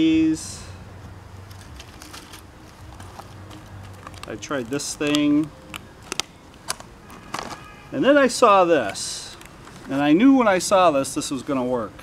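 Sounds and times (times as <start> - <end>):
plastic packaging rustling: 1.4 - 7.7.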